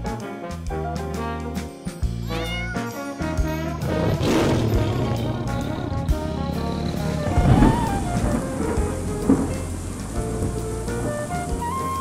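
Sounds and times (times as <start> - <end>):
background music: 0.0 - 12.0
steady rain: 3.8 - 12.0
thunder: 3.8 - 12.0.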